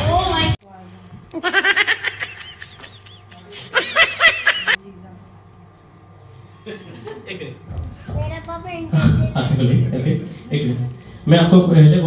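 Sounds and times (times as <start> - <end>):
high-pitched laughter: 1.4 - 4.8.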